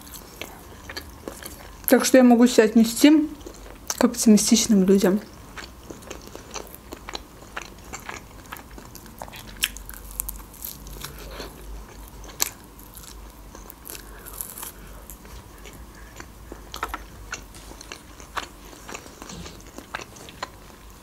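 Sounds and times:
person biting and chewing meat: 0:05.5 - 0:21.0.

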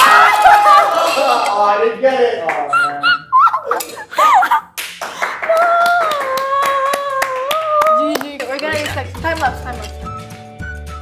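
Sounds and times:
hands clapping: 0:02.4 - 0:02.8, 0:04.6 - 0:10.5
person yelping: 0:02.7 - 0:04.6
person squealing: 0:02.7 - 0:04.7.

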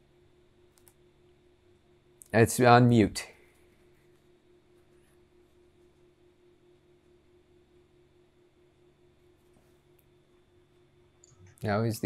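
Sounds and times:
faint low electrical hum: 0:00.0 - 0:12.0.

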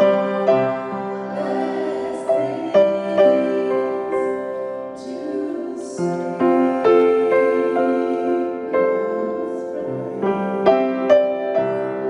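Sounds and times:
two women singing: 0:00.0 - 0:12.0
upright piano chords: 0:00.0 - 0:12.0.

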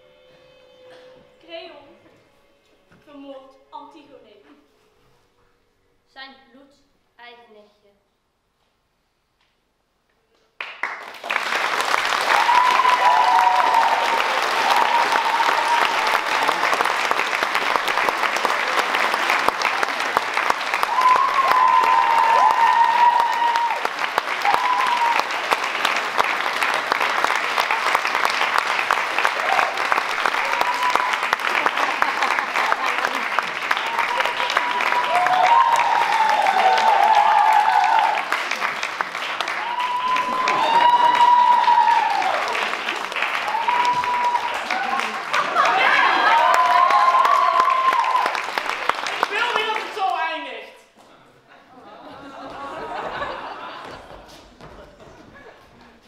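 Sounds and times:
crowd clapping: 0:10.4 - 0:50.8, 0:52.0 - 0:56.0.

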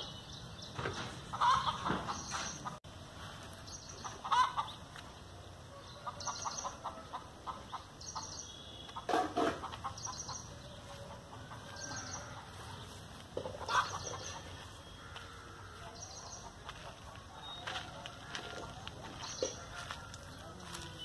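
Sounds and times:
chickens clucking: 0:00.7 - 0:02.8, 0:03.5 - 0:20.9.

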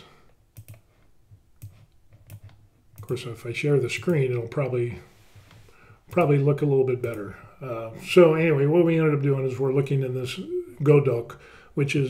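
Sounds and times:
computer mouse clicking: 0:00.3 - 0:03.3, 0:07.0 - 0:07.3.

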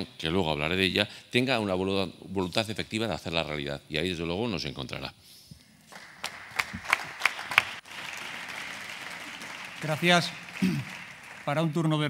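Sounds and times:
people clapping: 0:05.9 - 0:12.0.

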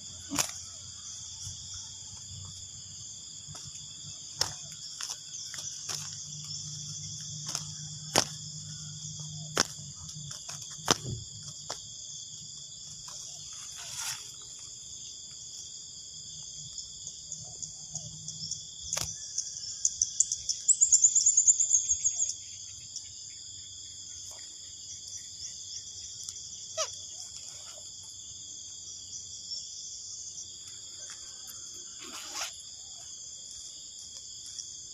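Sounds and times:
high-pitched insect chorus: 0:00.0 - 0:34.9.

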